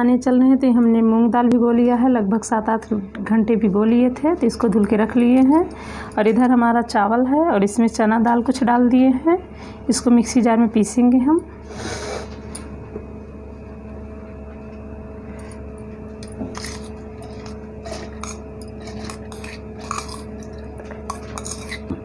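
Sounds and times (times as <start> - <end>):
steady background hum: 0.0 - 22.0
spoon and bowls clinking on metal: 4.6 - 6.6, 16.2 - 22.0.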